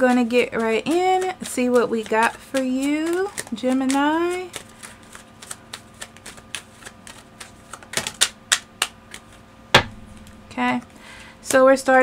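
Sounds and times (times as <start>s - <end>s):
cards being shuffled: 0.1s - 10.4s.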